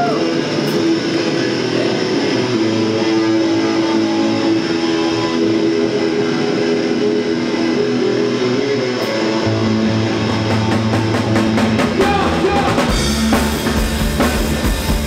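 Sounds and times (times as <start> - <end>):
electric guitars strumming: 0.0 - 15.0.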